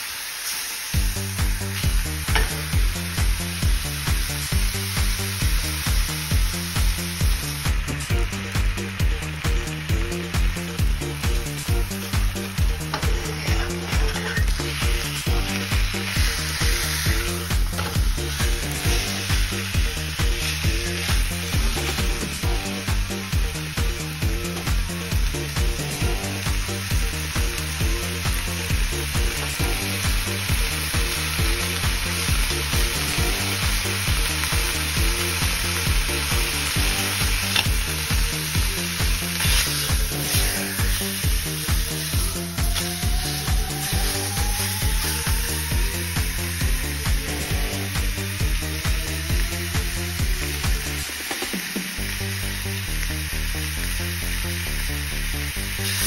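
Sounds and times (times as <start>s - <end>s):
steak sizzling in a frying pan: 0.0s - 56.0s
background music with steady beat: 1.0s - 56.0s.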